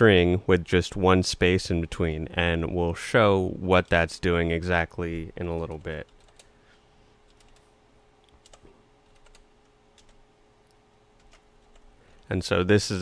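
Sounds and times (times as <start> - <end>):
typing on computer keyboard: 5.6 - 6.5, 7.3 - 7.6, 8.3 - 10.2, 11.2 - 11.9.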